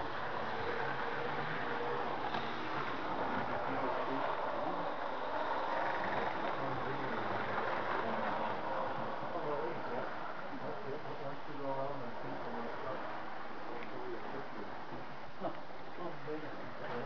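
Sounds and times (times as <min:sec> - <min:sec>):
model trains rolling on track: 0:00.0 - 0:10.4
background chatter of people: 0:00.0 - 0:17.0.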